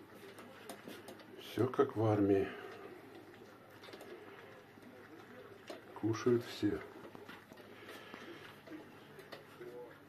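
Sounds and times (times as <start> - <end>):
puppies eating from metal bowls: 0.0 - 10.0.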